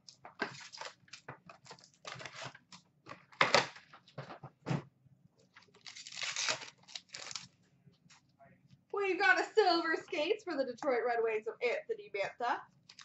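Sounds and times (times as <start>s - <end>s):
wrappers crinkling and rustling: 0.1s - 4.2s, 5.5s - 8.2s.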